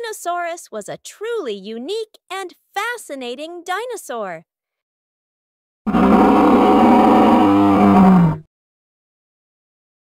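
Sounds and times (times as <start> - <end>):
dinosaur roar: 5.9 - 8.5.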